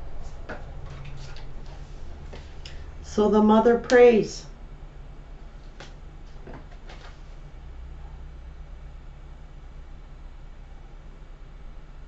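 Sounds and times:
cards being shuffled: 5.7 - 7.2.

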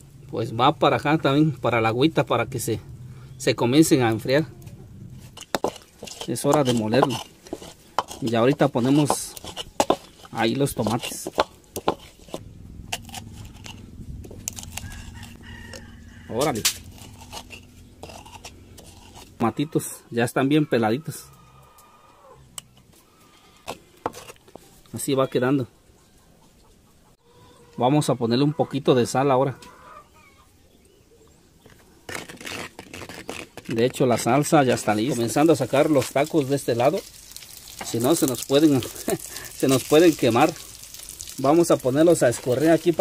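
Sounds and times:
low drone: 0.0 - 5.4, 12.4 - 19.4
stone pestle grinding in clay bowl: 5.2 - 19.4, 23.6 - 24.6, 31.7 - 36.4.

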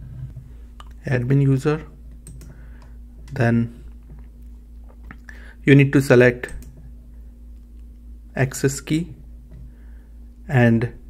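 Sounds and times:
low electrical hum: 0.0 - 11.0
person speaking: 0.8 - 2.0, 3.2 - 4.1
keyboard and mouse clicks: 2.2 - 2.5.

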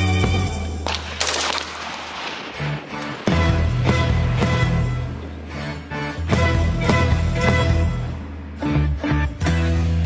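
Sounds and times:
music: 0.0 - 1.2, 2.4 - 10.0
gunshots echoing: 0.8 - 4.4.

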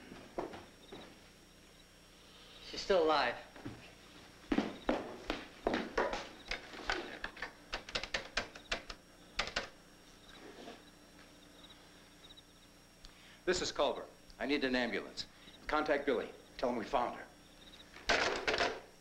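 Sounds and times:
footsteps: 0.0 - 1.4, 3.5 - 7.2.

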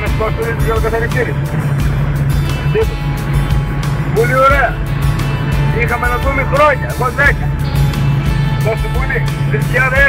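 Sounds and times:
diesel engine drone: 0.0 - 10.0
music playing: 0.0 - 10.0.

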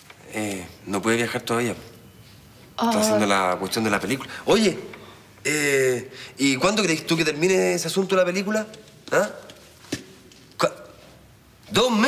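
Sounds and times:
man's questioning interjection: 2.8 - 3.7.

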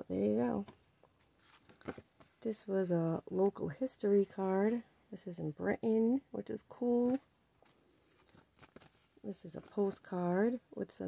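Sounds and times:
plastic sleeve handled: 0.6 - 2.4, 7.0 - 10.1
paper cards rustling: 1.2 - 2.4, 7.0 - 10.1.

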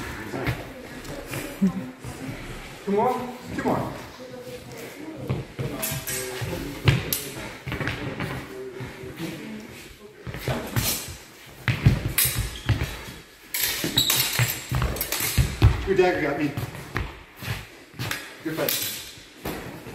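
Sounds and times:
footsteps on hall floor: 0.0 - 18.4.

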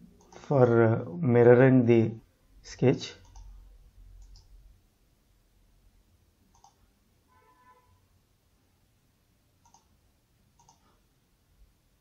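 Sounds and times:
low room noise: 0.0 - 12.0
computer mouse clicks: 3.2 - 3.5, 4.2 - 4.6, 6.5 - 6.8, 9.6 - 9.9, 10.6 - 11.0.

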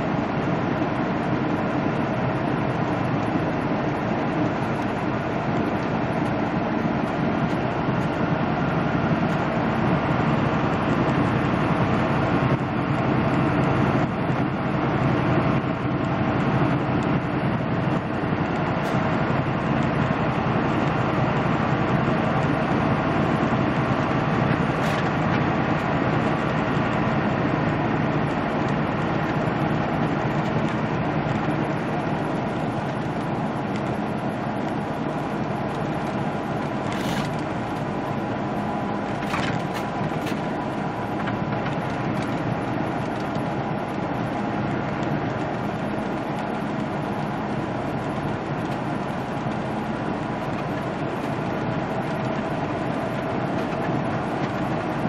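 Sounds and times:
diesel engine low hum: 0.0 - 55.0.

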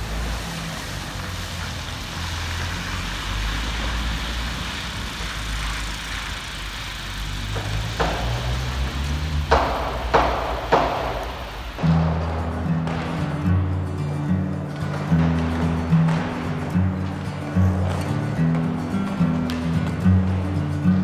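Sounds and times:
tyres hissing on wet road: 0.0 - 13.4
low traffic rumble: 0.0 - 21.0
sharp knocks: 7.4 - 13.6.

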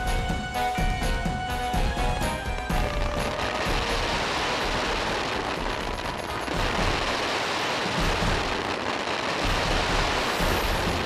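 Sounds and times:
fireworks bangs and crackling: 0.0 - 11.0
music: 0.0 - 11.0.

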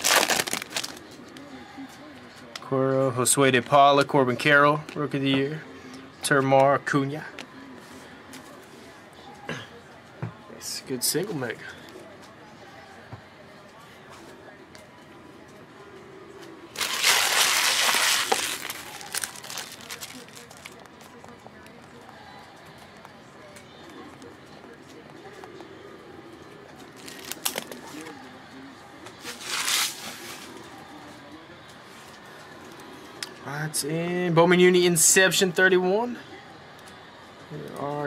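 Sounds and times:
foil wrappers crinkling: 0.0 - 1.0, 16.8 - 20.9, 27.0 - 28.1, 29.2 - 30.5.

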